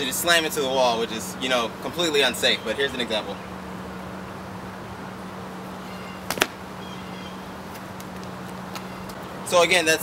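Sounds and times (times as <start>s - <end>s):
body impact on stone wall: 6.3s - 6.6s.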